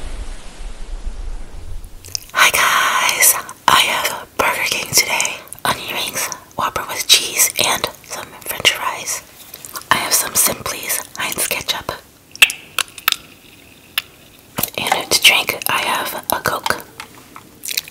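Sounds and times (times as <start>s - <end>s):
woman whispering: 2.3s - 12.1s, 14.6s - 16.9s.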